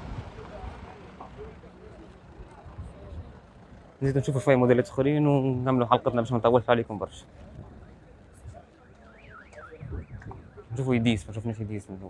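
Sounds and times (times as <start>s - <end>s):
faint car alarm: 8.3s - 11.4s.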